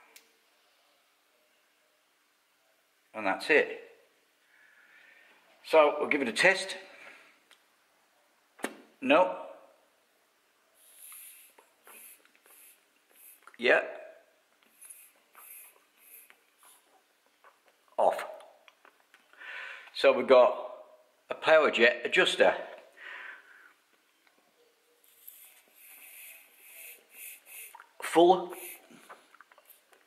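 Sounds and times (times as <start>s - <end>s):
hissing puffs of blown air: 10.8s - 13.5s, 14.7s - 16.4s, 25.1s - 29.1s.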